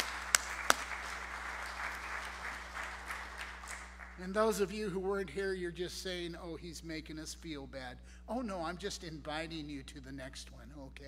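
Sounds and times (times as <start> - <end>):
sharp close claps: 0.0 - 4.2
congregation applauding: 0.0 - 4.4.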